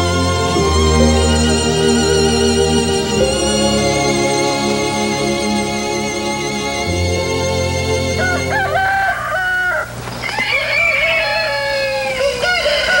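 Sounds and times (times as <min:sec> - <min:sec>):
held orchestral chord: 0:00.0 - 0:09.0
rooster crowing: 0:08.1 - 0:13.0.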